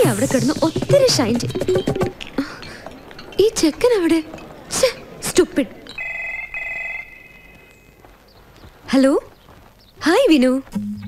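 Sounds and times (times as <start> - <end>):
mobile phone ringing: 5.9 - 7.9.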